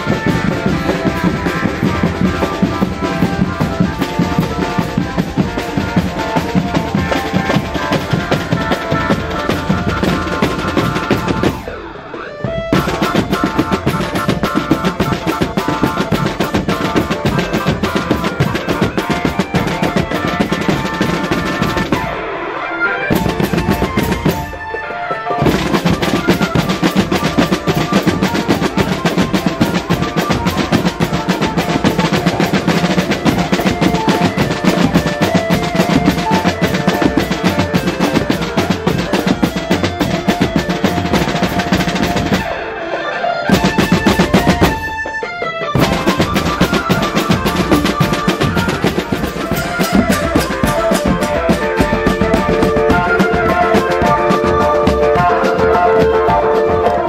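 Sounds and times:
marching drum band: 0.0s - 22.3s, 23.1s - 42.7s, 43.5s - 57.0s
pitched melody line: 0.0s - 57.0s.

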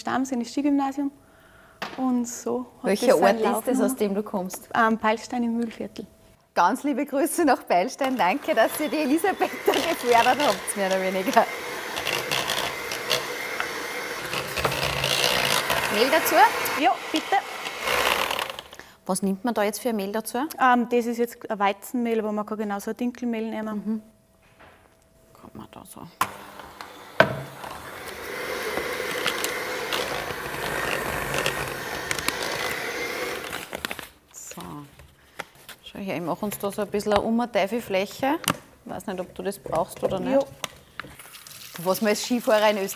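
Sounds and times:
electric hand mixer running: 8.0s - 18.8s, 26.2s - 34.0s.

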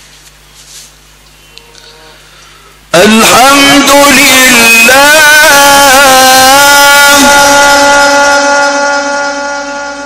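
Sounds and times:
man reciting in melodic style: 2.9s - 10.0s.

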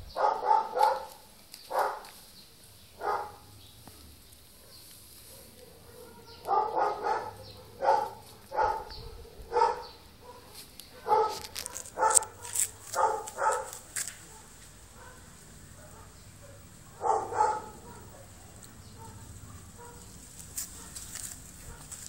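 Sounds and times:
puppies yelping: 5.6s - 20.1s.

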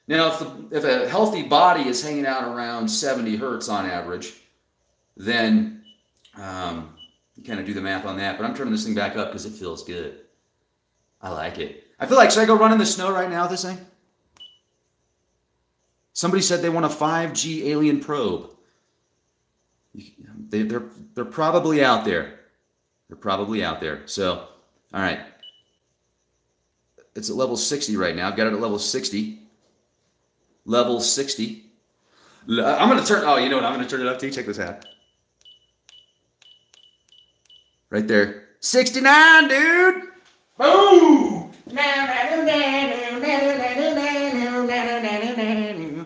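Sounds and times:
short high electronic beeps: 6.9s - 7.4s, 14.4s - 16.1s, 25.3s - 26.9s, 32.8s - 38.6s.

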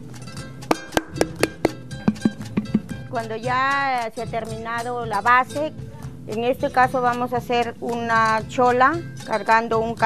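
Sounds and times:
music with plucked strings: 0.0s - 10.0s.

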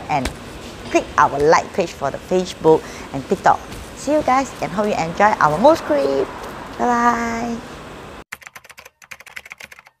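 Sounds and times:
computer keyboard typing: 8.3s - 10.0s.

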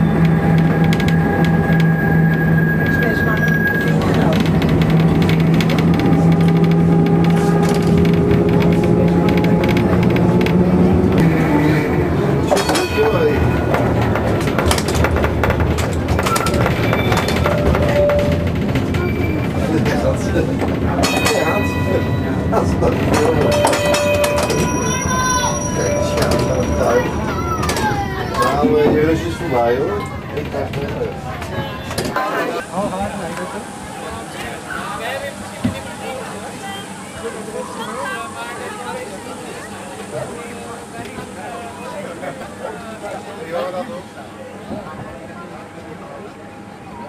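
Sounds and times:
wheels clicking and rattling: 0.0s - 11.5s, 12.3s - 32.3s
crowd chattering: 0.0s - 47.0s
tram hum: 0.0s - 47.0s.

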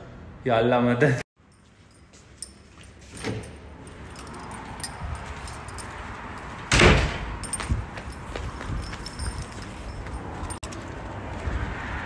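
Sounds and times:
loud door bang: 6.7s - 7.4s.

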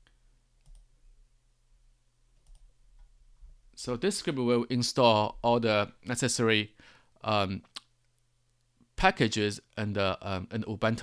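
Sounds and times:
low electrical hum: 0.0s - 11.0s
computer mouse clicks: 0.6s - 0.9s, 2.4s - 3.1s.

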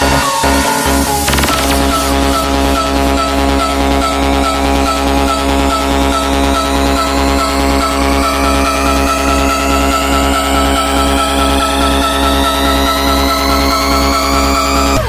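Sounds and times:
pulsing bass: 0.0s - 15.0s
rising synth sweep: 0.0s - 15.0s.

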